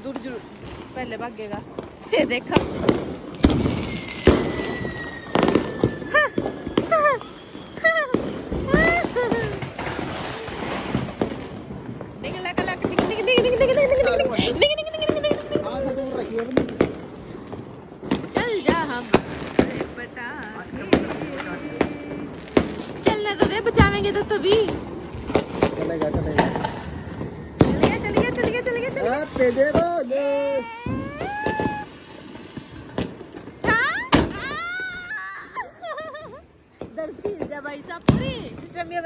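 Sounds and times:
firecrackers banging: 0:00.0 - 0:39.0
person shouting: 0:30.4 - 0:31.9.

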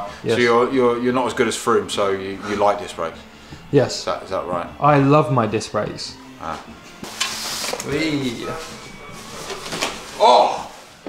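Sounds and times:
wrapping and cardboard crinkling: 0:07.1 - 0:11.0.

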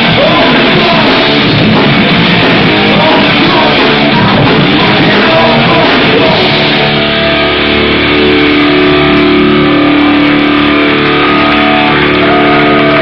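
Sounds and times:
distorted guitars and bass chords: 0:00.0 - 0:13.0.

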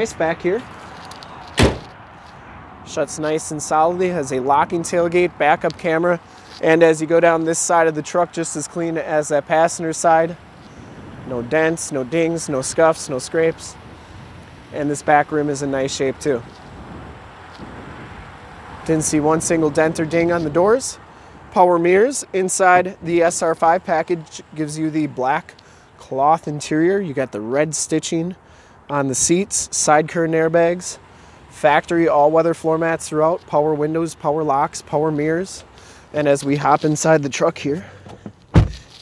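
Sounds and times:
man speaking: 0:00.0 - 0:00.7, 0:02.9 - 0:10.4, 0:11.3 - 0:13.8, 0:14.8 - 0:16.5, 0:18.9 - 0:38.0
outdoor background noise: 0:00.0 - 0:39.0
tailgate slamming shut: 0:01.5 - 0:02.0, 0:38.1 - 0:38.8.

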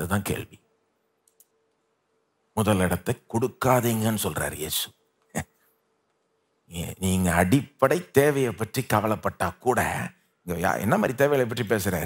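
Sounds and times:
man speaking: 0:00.0 - 0:00.6, 0:02.6 - 0:05.6, 0:06.7 - 0:12.0
faint steady hum: 0:00.0 - 0:12.0
faint clicks: 0:01.2 - 0:01.9.

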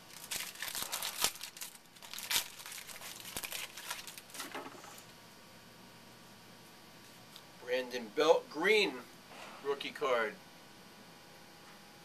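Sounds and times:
plastic wrapper tearing and crinkling: 0:00.0 - 0:04.9.

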